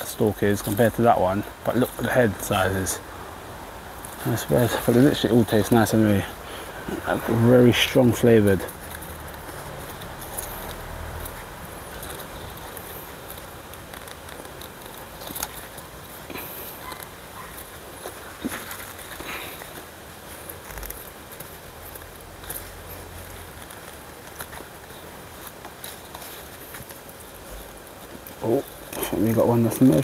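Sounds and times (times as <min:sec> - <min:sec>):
rustling of stalks and leaves: 0:00.0 - 0:30.0.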